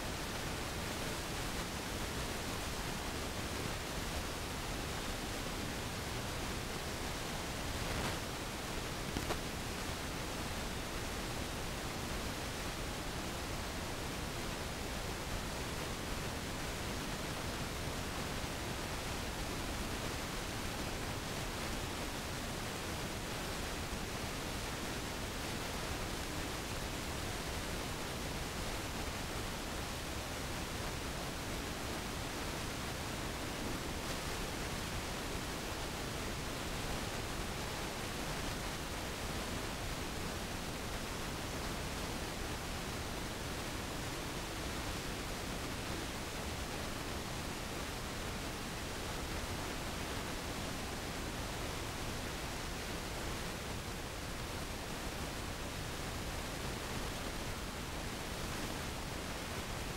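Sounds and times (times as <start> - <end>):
steady rushing noise: 0.0 - 59.9.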